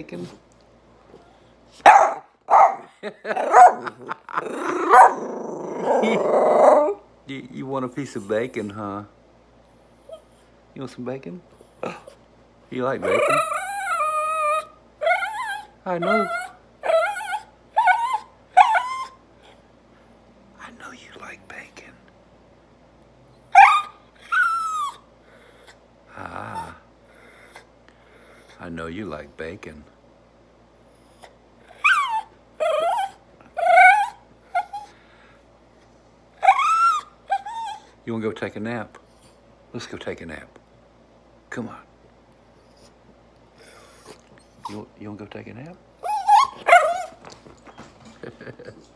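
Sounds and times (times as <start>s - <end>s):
small dog whining: 3.4s - 7.0s, 13.0s - 19.6s, 23.5s - 25.8s, 31.0s - 35.0s, 36.4s - 38.0s, 43.6s - 44.9s, 46.0s - 47.9s.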